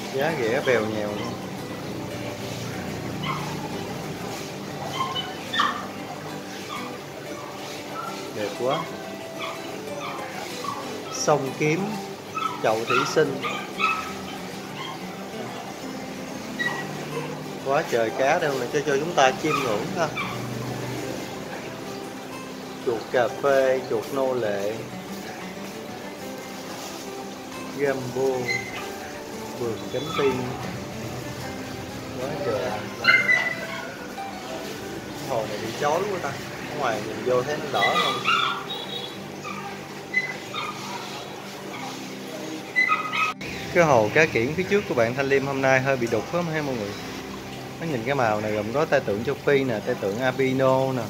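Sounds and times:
faint background music: 0.0s - 51.0s
dog yelping: 0.3s - 1.6s, 3.1s - 15.3s, 16.5s - 20.6s, 28.2s - 30.7s, 32.4s - 34.7s, 37.3s - 42.1s, 42.7s - 43.4s
high-pitched animal yelps: 4.8s - 5.9s, 12.3s - 15.0s, 16.6s - 17.4s, 19.5s - 20.5s, 33.0s - 34.0s, 37.8s - 41.1s, 42.7s - 43.4s.

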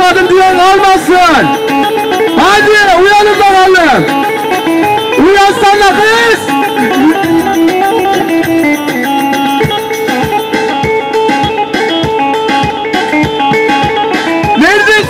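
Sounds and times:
electronic keyboard dance tune: 0.0s - 15.0s
drum beat: 1.4s - 14.8s
person singing: 6.4s - 9.0s.

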